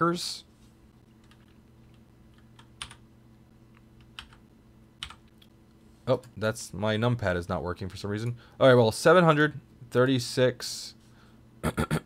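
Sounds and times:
low steady hum: 0:00.0 - 0:12.0
keystrokes on a keyboard: 0:01.2 - 0:03.0, 0:04.0 - 0:04.4, 0:05.0 - 0:05.5.

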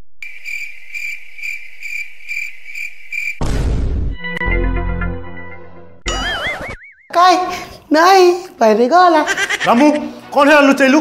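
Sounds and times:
cricket chirping: 0:00.2 - 0:03.4.

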